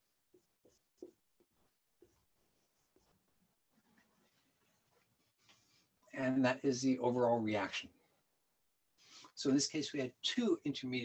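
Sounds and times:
faint pen strokes on paper: 0.0 - 5.9.

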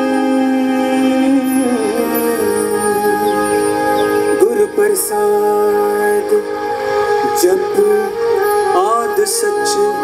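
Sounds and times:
devotional music ensemble: 0.0 - 10.0.

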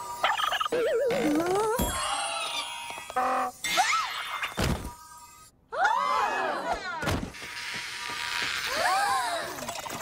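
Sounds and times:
wobbling cartoon warble: 0.2 - 1.8.

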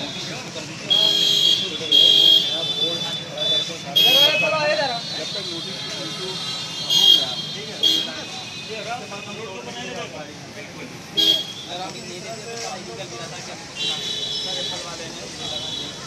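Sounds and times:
crowd voices: 0.0 - 16.0
street traffic noise: 0.0 - 16.0
vehicle horns honking: 0.9 - 9.4, 11.2 - 11.8.

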